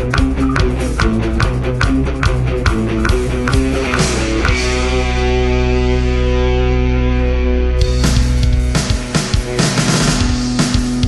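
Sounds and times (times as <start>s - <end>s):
distorted guitar chord ringing: 0.0s - 11.0s
rock drums: 0.0s - 11.0s.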